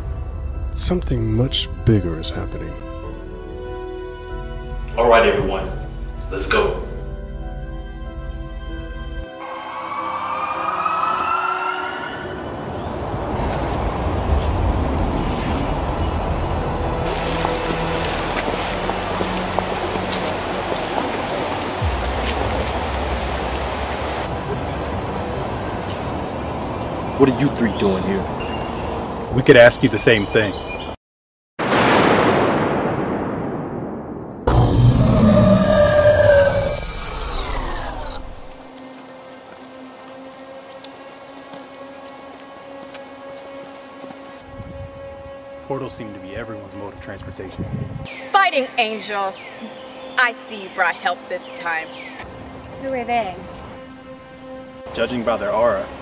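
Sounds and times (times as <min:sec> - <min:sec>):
dark music drone: 0:00.0 - 0:29.2
loud boom-like hit: 0:31.6 - 0:35.8
swell with deep rumble: 0:32.3 - 0:38.6
rising whine: 0:34.4 - 0:38.7.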